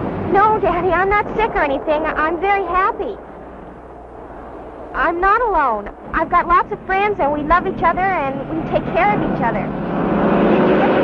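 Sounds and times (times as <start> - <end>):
road vehicle passing: 0.0 - 11.0.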